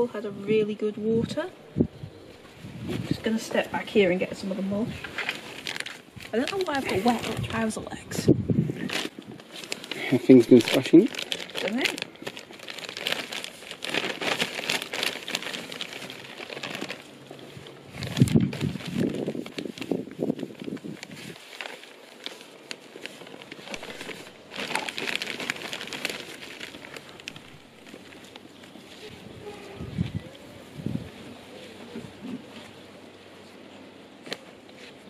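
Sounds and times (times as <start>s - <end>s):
mulch rustling: 2.2s - 7.8s, 8.7s - 35.0s
plastic sack crinkling: 2.4s - 7.9s, 8.6s - 32.8s.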